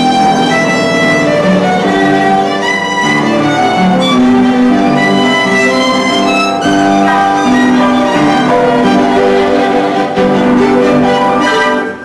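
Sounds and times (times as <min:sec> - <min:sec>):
bowed violin melody: 0:00.0 - 0:12.0.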